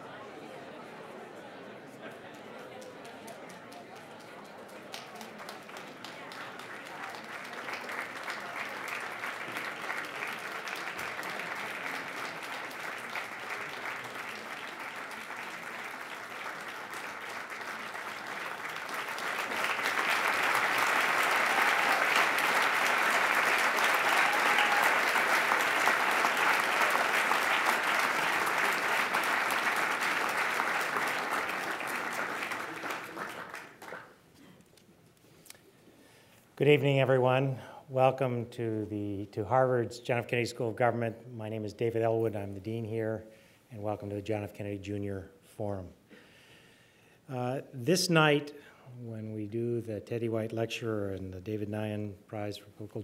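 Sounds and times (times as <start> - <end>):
audience applauding: 2.0 - 34.2.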